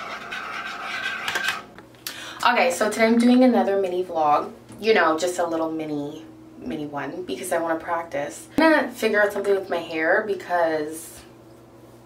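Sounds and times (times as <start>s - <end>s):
spoon stirring in ceramic mug: 0.0s - 1.6s.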